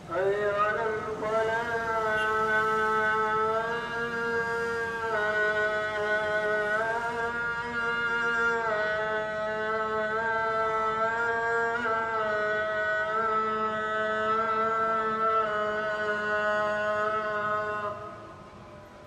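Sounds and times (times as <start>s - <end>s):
man chanting call to prayer: 0.0s - 18.5s.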